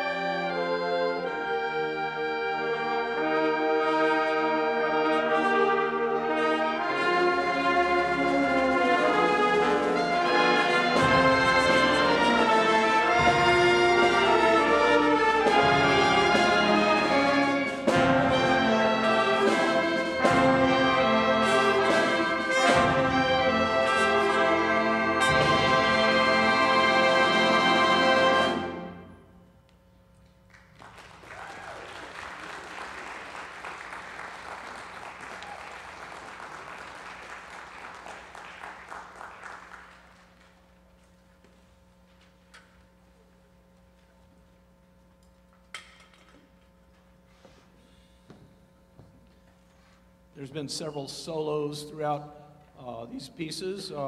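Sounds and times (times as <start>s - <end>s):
concert band playing: 0.0s - 29.2s
sharp accented percussion strikes: 8.2s - 27.0s.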